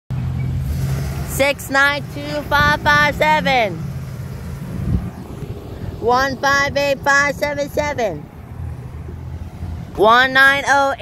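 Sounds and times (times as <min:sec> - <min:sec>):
truck engine rumbling: 0:00.1 - 0:11.0
wind buffeting microphone: 0:00.6 - 0:11.0.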